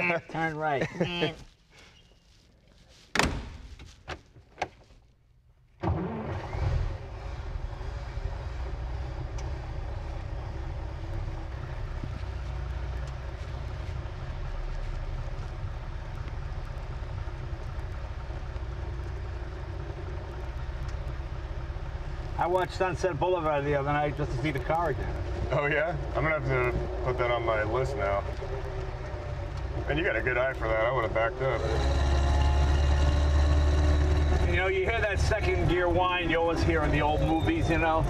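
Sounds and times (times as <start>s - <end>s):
sharp thunk: 3.1s - 4.2s
car engine running: 5.9s - 38.0s.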